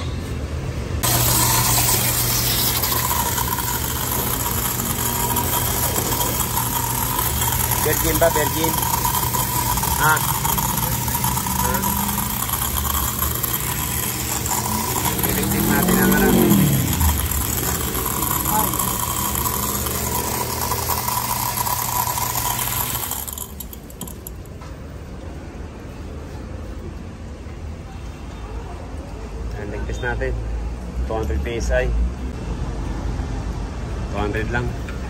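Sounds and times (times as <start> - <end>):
pressure washer pump drone: 0.1 - 25.0
water spray hissing: 1.0 - 23.5.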